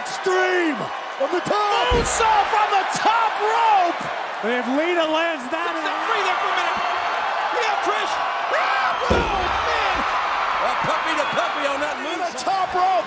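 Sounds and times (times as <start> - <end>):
crowd cheering and shouting: 0.0 - 13.0
heavy thud on ring canvas: 1.8 - 2.4.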